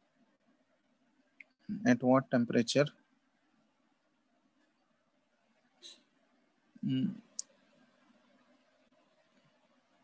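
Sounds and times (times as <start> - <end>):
man humming: 6.8 - 7.2.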